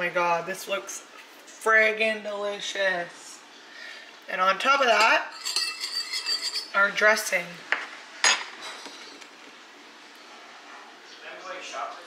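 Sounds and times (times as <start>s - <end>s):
dishware clatter: 5.0s - 6.8s, 8.2s - 9.0s.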